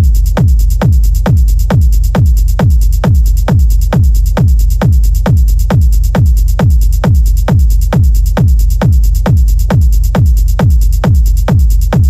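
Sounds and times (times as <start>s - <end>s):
hi-hats ticking: 0.0s - 12.0s
techno kick drum: 0.0s - 12.0s.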